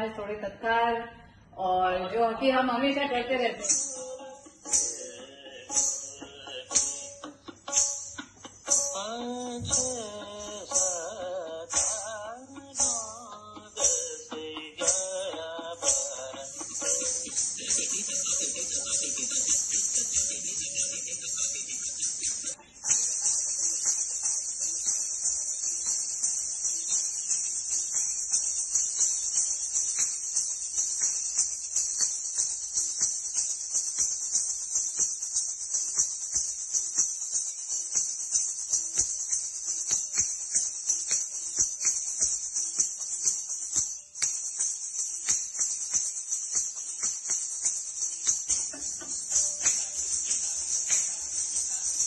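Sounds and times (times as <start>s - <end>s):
ankle bells jingling: 3.2s - 52.0s.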